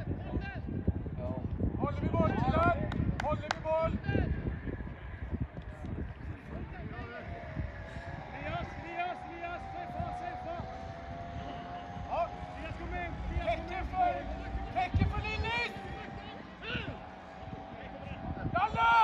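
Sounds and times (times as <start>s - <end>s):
low rumble: 3.8s - 19.0s
distant shouts of players: 6.5s - 19.0s.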